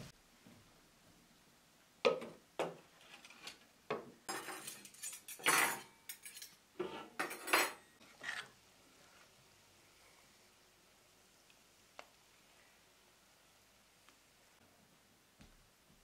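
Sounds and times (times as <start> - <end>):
metal plates and cutlery clattering: 4.3 - 8.0.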